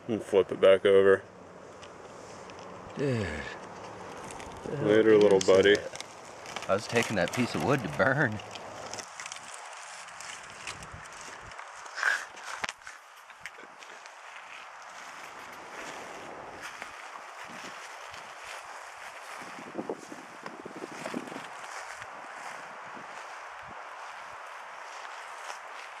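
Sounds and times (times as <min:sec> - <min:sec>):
steady outdoor hiss: 0:00.0 - 0:26.0
footsteps on pine needles: 0:01.6 - 0:26.0.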